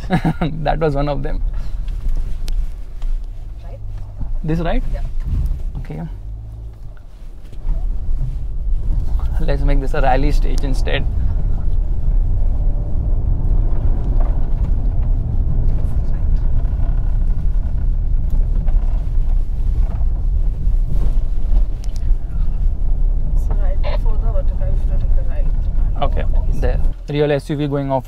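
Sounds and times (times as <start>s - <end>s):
car engine running: 0.0s - 28.0s
tyres rumbling over rough ground: 0.0s - 28.0s.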